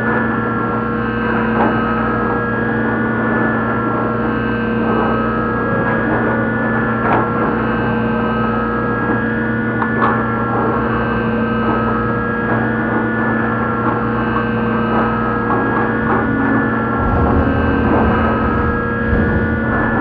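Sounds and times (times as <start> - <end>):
dark ambient drone music: 14.2 - 20.0.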